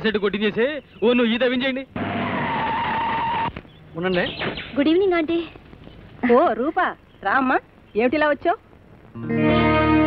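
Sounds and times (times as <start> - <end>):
car tyres screeching: 2.0 - 3.6.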